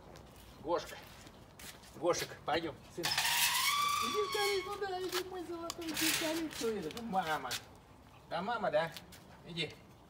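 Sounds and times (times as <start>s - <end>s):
metal gate hinges squealing: 3.0s - 4.9s.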